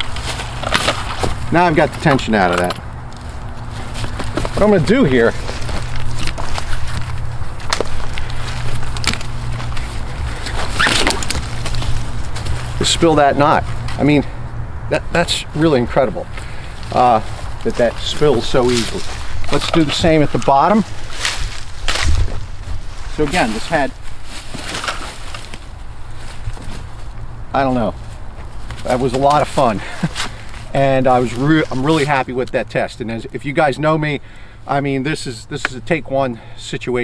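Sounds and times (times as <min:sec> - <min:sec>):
rope rigging hardware clicking: 0:00.0 - 0:14.2, 0:16.3 - 0:22.3
steady low rumble: 0:00.0 - 0:31.8.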